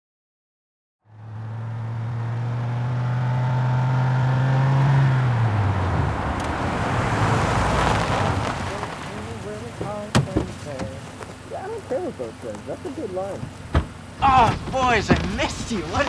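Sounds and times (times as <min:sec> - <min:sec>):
car engine running: 0:01.1 - 0:16.0.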